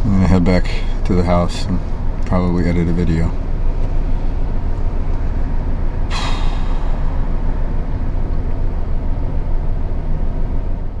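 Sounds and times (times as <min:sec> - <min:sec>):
car cabin rumble: 0:00.0 - 0:11.0
short hiss: 0:06.1 - 0:07.2.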